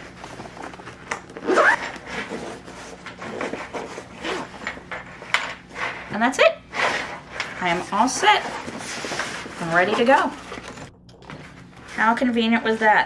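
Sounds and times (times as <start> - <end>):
cloth rubbing: 0.0 - 3.0
zipper pulls: 0.7 - 4.6.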